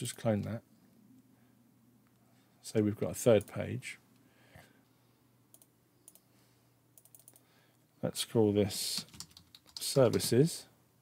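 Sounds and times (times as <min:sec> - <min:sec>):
computer mouse clicks: 0:05.5 - 0:06.3, 0:07.0 - 0:07.4.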